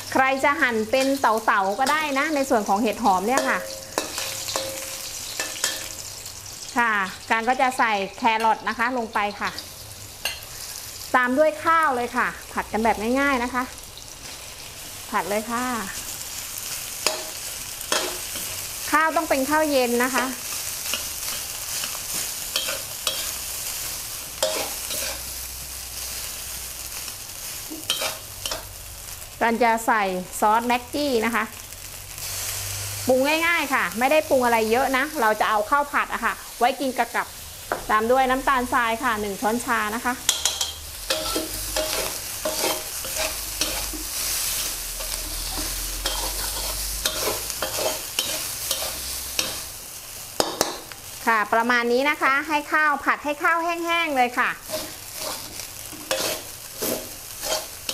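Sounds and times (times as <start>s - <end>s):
rice sizzling in a wok: 0.0s - 57.9s
metal spatula scraping a pan: 0.7s - 6.7s, 9.3s - 10.9s, 16.6s - 26.5s, 27.4s - 28.7s, 40.2s - 49.8s, 54.6s - 57.9s.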